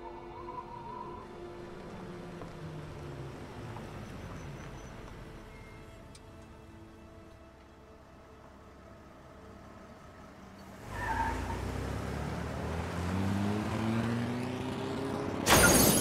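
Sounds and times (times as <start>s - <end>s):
car engine accelerating: 10.7s - 15.5s
car crashing into tree: 15.5s - 16.0s.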